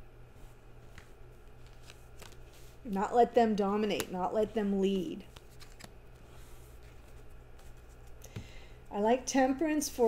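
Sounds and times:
woman speaking: 2.9s - 5.3s, 8.9s - 10.0s.

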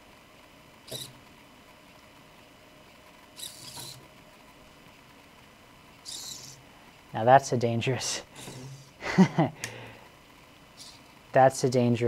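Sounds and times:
servo motors whirring: 0.9s - 1.2s, 3.4s - 4.1s, 6.0s - 6.6s, 8.4s - 8.9s, 10.8s - 11.1s.

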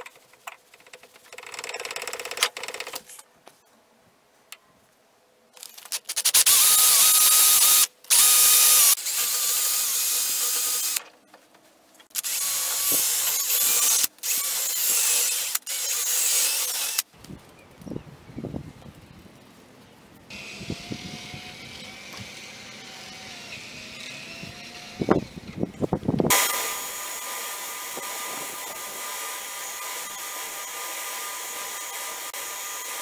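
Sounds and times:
electric drill with wire brush: 6.0s - 11.0s, 12.1s - 17.1s, 20.3s - 25.6s, 26.2s - 33.0s.

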